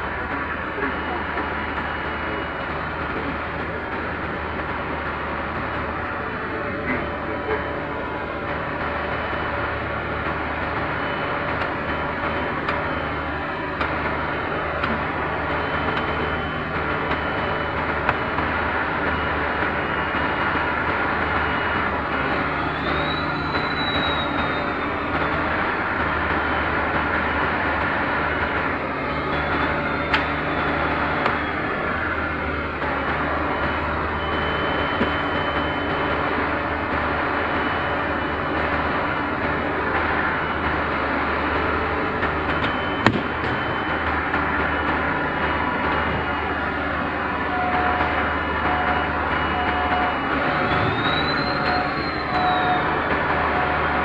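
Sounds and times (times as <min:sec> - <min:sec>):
diesel engine running: 0:00.0 - 0:54.0.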